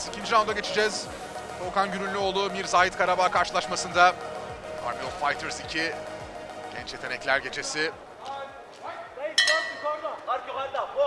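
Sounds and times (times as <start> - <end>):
metal ring bell ringing: 9.4 - 10.1.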